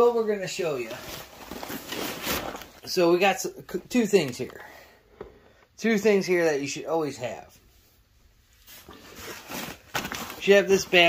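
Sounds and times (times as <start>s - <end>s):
bag fabric rustling and scraping: 0.6s - 2.8s, 8.5s - 11.0s.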